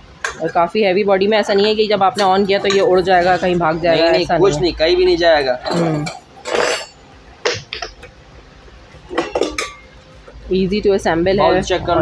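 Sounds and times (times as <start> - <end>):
metal bowl clinking: 2.2 - 4.2, 5.7 - 7.0, 9.1 - 10.0.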